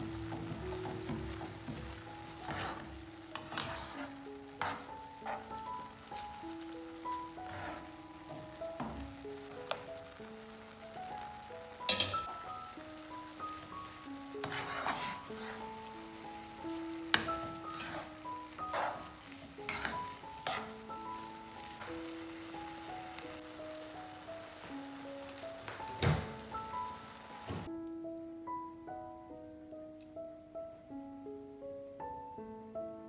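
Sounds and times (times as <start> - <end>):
background piano music: 0.0 - 33.0
metal tongs scraping a pan: 0.4 - 6.2, 7.1 - 8.0, 11.9 - 12.4, 14.4 - 15.9, 17.1 - 21.9.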